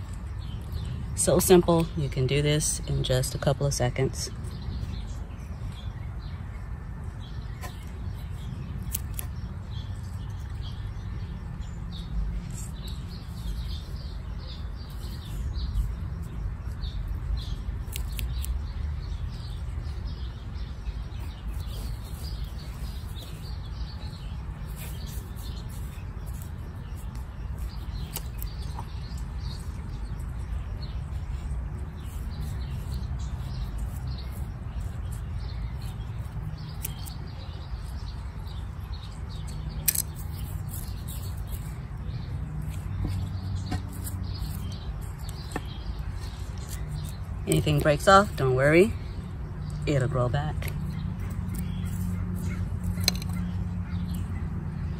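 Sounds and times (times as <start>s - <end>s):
small birds chirping: 0.0s - 54.9s.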